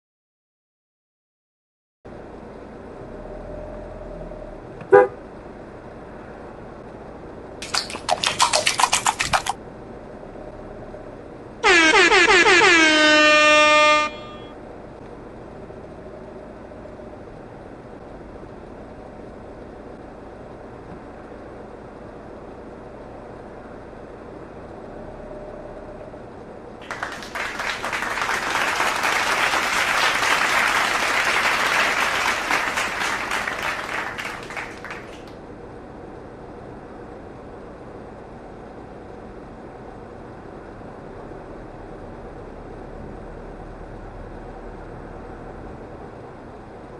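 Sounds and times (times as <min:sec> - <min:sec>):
vehicle horn toots: 0:04.9 - 0:05.2, 0:11.6 - 0:14.6.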